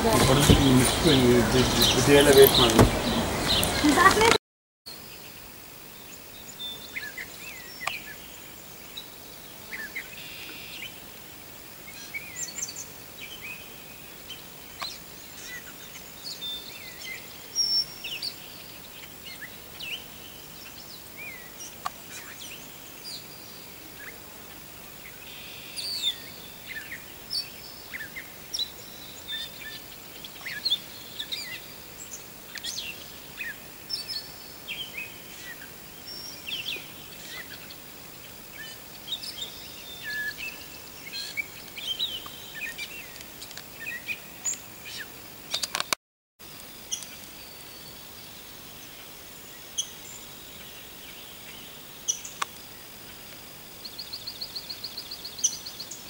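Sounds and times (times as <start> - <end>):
small birds chirping: 0.0 - 11.1, 11.8 - 46.0, 46.6 - 56.0
outdoor background hiss: 0.0 - 56.0.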